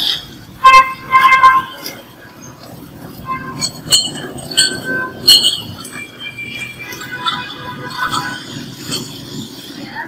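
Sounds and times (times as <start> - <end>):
sharp metallic clinks: 3.4 - 9.6.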